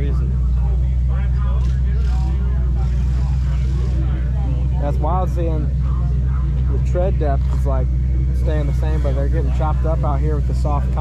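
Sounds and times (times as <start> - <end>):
faint voices: 0.0 - 11.0
loud low engine drone: 0.0 - 11.0.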